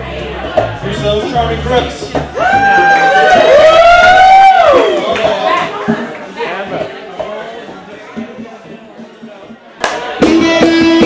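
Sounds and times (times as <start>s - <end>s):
high-pitched cheering whoops: 2.4s - 5.2s.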